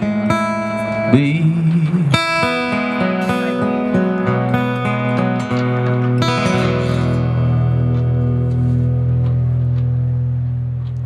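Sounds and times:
light guitar strums: 0.0 - 11.0
guitar chord held: 2.6 - 11.0.

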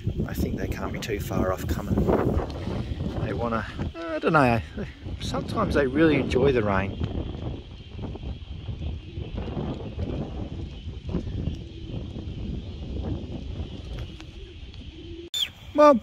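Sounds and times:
pigeons cooing: 0.0 - 15.5
wind buffeting microphone: 0.0 - 16.0.

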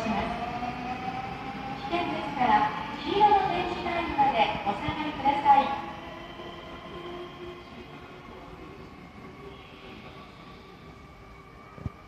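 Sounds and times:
public address announcement: 0.0 - 12.0.

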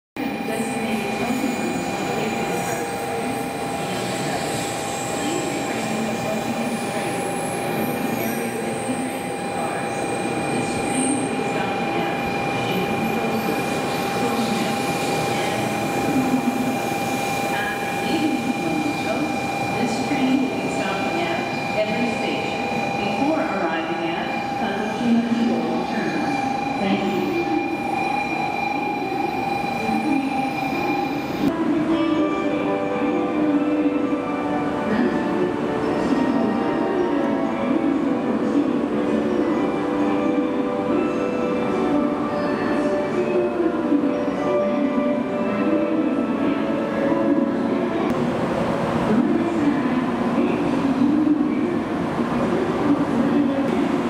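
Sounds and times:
high-pitched train whine: 0.2 - 54.0
train rumbling into station: 0.2 - 54.0.

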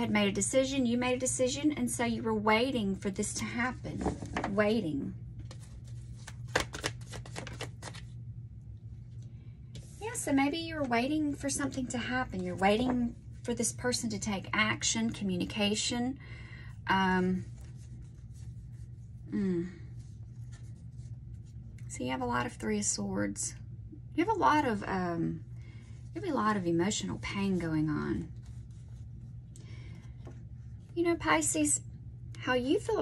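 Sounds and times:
steady low hum: 0.0 - 33.0
cards shuffled by hand: 5.4 - 8.2.

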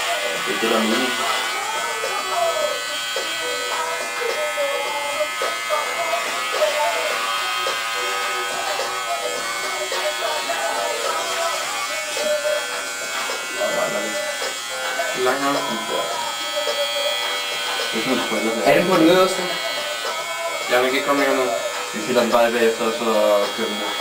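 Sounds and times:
electric hair clipper buzzing: 0.0 - 24.0
voices talking: 0.3 - 4.6, 8.6 - 24.0.

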